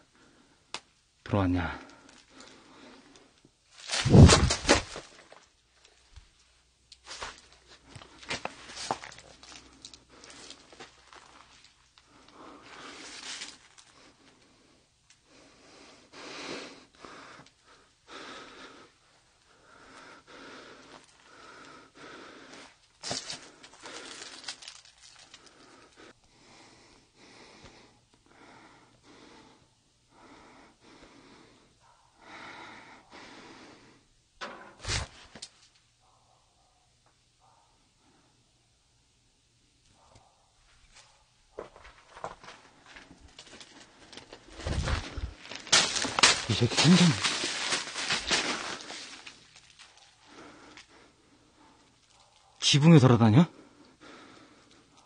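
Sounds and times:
person breathing: 1.8s - 3.4s, 12.1s - 34.1s, 43.8s - 52.2s, 53.5s - 55.0s
footsteps on dry leaves and snow: 7.0s - 9.6s, 12.8s - 13.7s, 23.0s - 25.3s, 41.7s - 50.0s.

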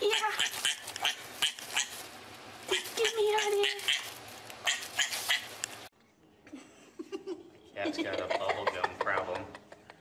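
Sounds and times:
piglet squealing: 0.0s - 2.0s, 2.7s - 5.6s.

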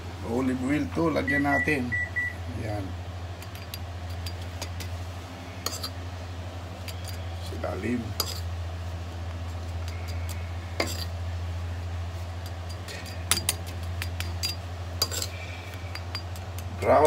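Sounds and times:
steady low hum: 0.0s - 17.0s
metal spoon clinking on wire rack: 12.5s - 16.7s.

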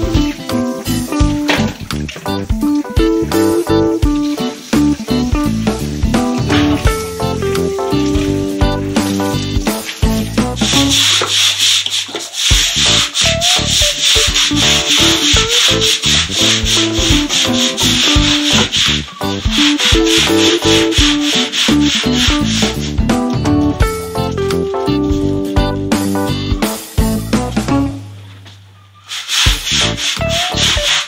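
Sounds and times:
guitar-backed music: 0.0s - 11.4s, 12.5s - 28.6s, 29.5s - 31.0s
brush scrubbing wet concrete: 0.8s - 23.0s, 29.1s - 31.0s.

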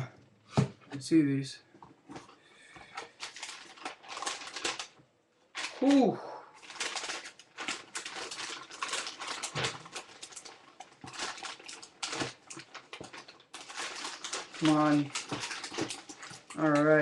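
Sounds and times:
paper rustling and crinkling: 2.9s - 6.0s, 6.6s - 17.0s.

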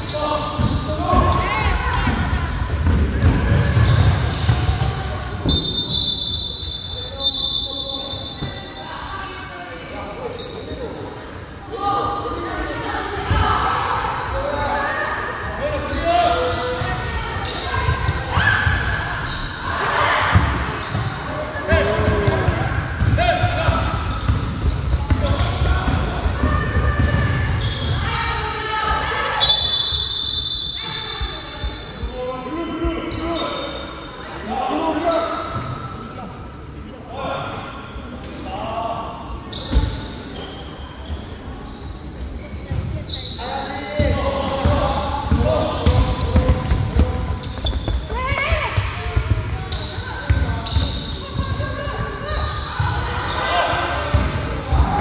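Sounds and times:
voices in gym hall: 0.0s - 55.0s
referee's whistle: 5.4s - 8.8s, 29.3s - 32.2s.

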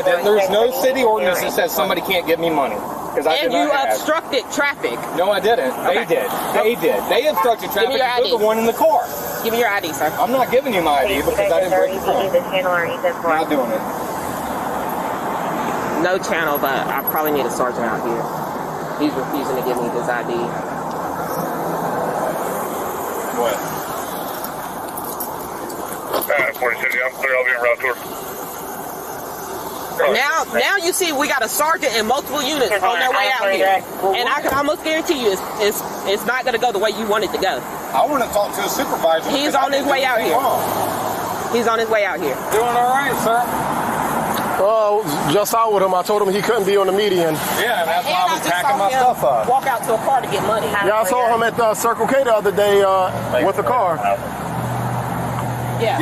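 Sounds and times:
road traffic hiss: 0.0s - 56.0s.

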